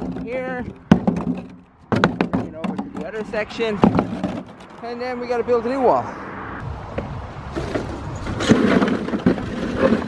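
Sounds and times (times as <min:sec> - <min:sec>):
bricks clattering onto a pile: 0:00.0 - 0:04.8, 0:07.6 - 0:10.0.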